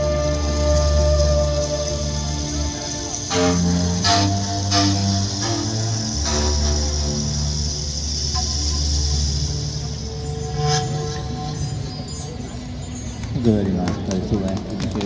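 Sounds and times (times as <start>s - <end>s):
new age music over loudspeakers: 0.0s - 15.0s.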